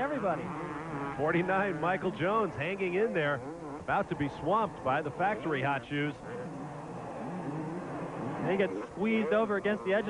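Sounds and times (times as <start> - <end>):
motocross bikes revving: 0.0 - 10.0.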